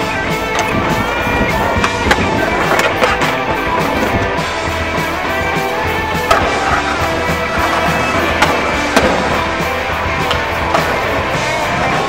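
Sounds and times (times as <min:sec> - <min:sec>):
music soundtrack: 0:00.0 - 0:12.0
skateboard clacking on concrete: 0:00.0 - 0:12.0.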